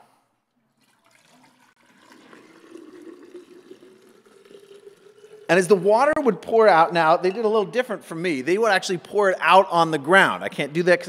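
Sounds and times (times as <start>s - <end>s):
water pouring into a glass jar: 0.5s - 6.2s.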